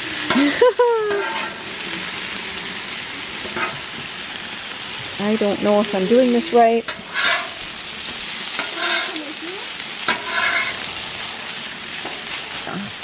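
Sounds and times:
food sizzling on a griddle: 0.0 - 13.0.

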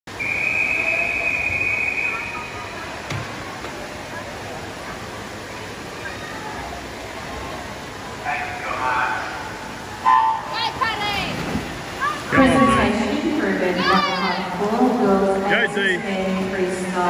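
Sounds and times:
referee's whistle long blast: 0.1 - 2.6
murmur of echoing voices: 0.6 - 17.0.

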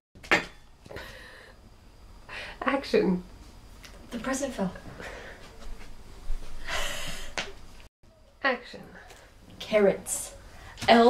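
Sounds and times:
woman's sharp breath: 6.6 - 7.4.

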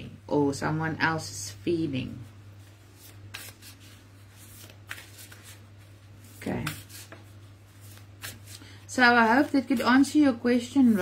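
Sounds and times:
steady low hum: 0.0 - 11.0
cards rustling: 2.6 - 10.0.

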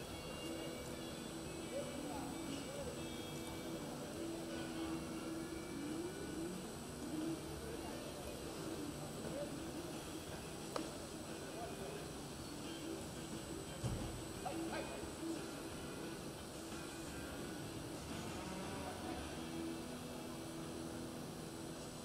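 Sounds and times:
steady low background noise: 0.0 - 22.0.

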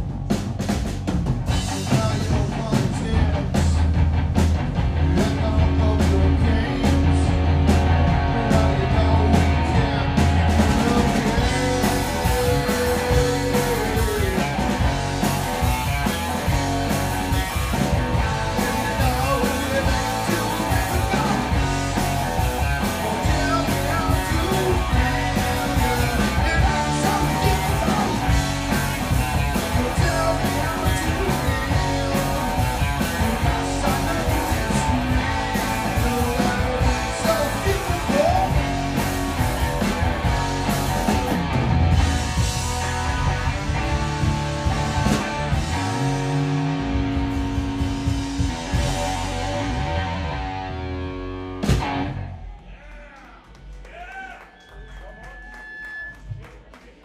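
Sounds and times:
drum kit: 0.0 - 52.4
electric guitars: 0.0 - 52.6
audience clapping and whooping: 52.6 - 57.0.

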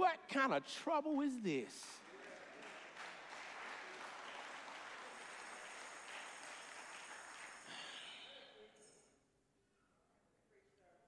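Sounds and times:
congregation applauding: 1.9 - 8.4.

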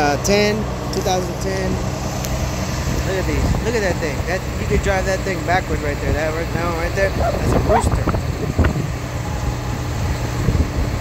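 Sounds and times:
vehicle engine rumbling: 0.0 - 11.0.

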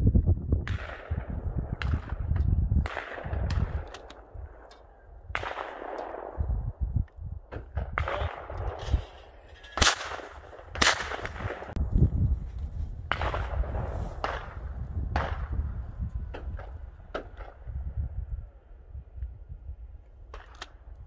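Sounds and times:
shotgun firing: 0.6 - 4.7, 5.3 - 6.5, 7.5 - 9.2, 9.8 - 11.8, 13.1 - 15.6.

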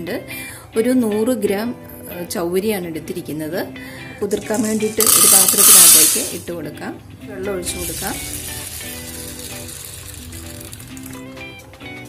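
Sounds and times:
water pouring into a bowl: 7.8 - 11.2.

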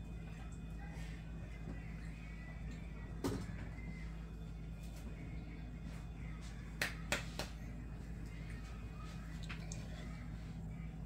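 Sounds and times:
steady low hum: 0.0 - 11.0
hands snapping: 6.8 - 7.6.

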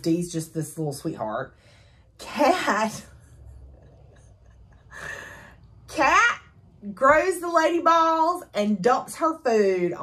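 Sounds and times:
low hum: 1.6 - 7.6.

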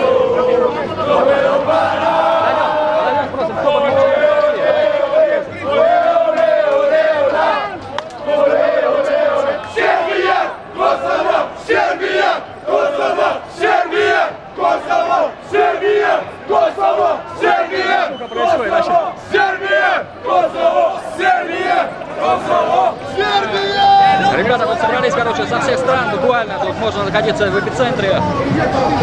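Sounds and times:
crowd of men chanting: 0.0 - 24.2.

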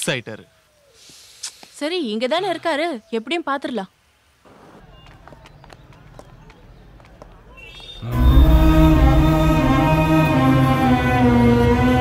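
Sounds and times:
footsteps on paved road: 4.8 - 8.0.

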